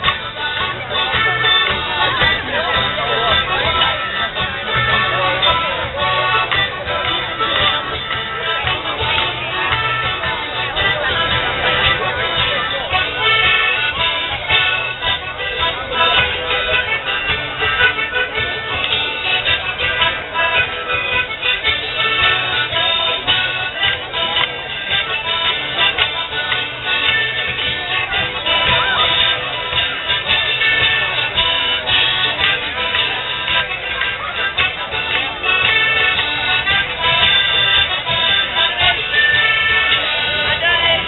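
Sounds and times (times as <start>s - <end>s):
accordion folk dance music: 0.0s - 41.0s.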